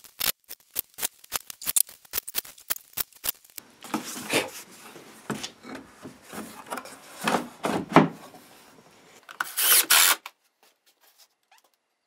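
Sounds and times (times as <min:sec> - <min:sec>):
cordless drill driving screws: 0:09.4 - 0:10.2.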